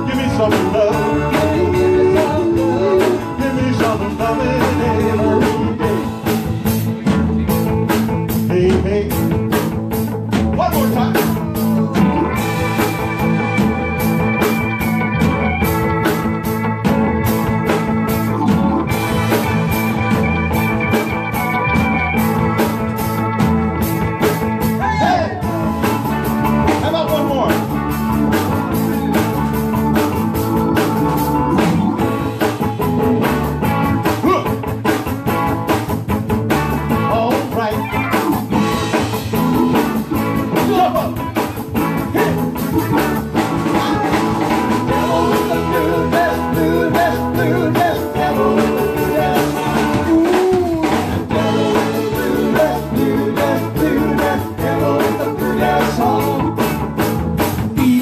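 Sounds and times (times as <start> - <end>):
live rock band playing: 0.0 - 58.0.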